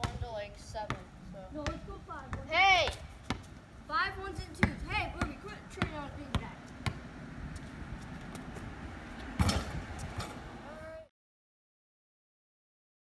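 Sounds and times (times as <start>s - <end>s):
basketball bouncing on concrete: 0.0s - 3.6s, 4.2s - 10.4s.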